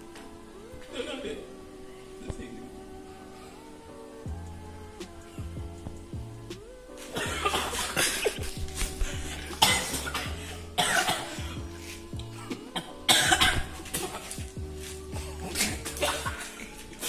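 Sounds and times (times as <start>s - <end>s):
relaxed instrumental music: 0.0s - 17.0s
man coughing hard: 7.2s - 8.5s, 9.2s - 11.6s, 12.8s - 14.4s, 15.2s - 16.8s.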